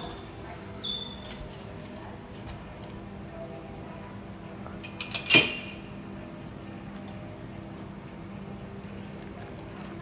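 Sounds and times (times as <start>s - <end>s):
barware clinking: 4.8s - 6.0s.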